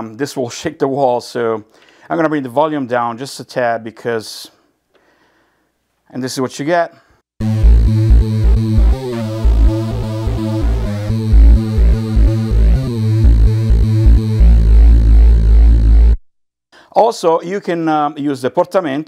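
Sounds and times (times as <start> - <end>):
synthesizer bass line: 7.4 - 16.2.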